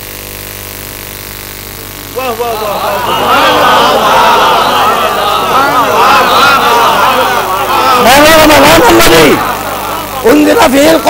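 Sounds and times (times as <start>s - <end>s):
electrical hum with hiss: 0.0s - 11.0s.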